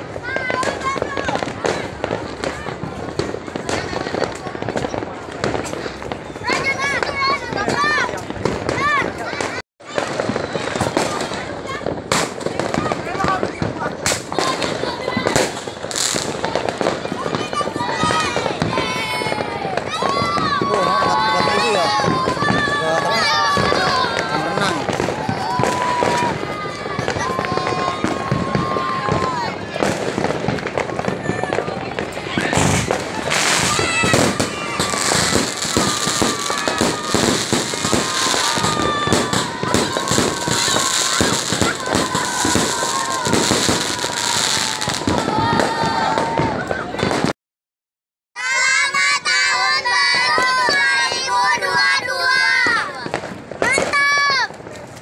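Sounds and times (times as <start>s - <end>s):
fireworks and firecrackers banging: 0.0s - 47.3s, 48.4s - 55.0s.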